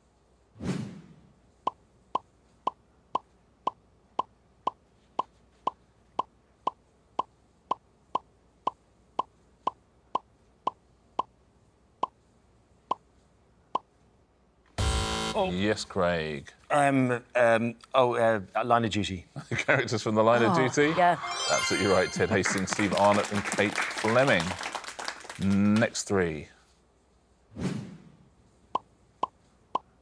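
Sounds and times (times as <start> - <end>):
game show buzzer: 14.8 - 15.6, 21.2 - 22.7.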